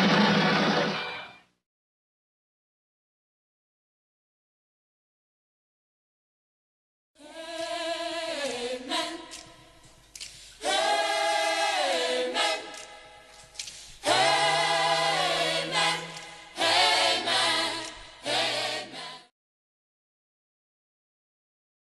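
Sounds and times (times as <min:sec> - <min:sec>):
choir singing: 0:07.2 - 0:09.6, 0:10.6 - 0:13.3, 0:14.0 - 0:19.3.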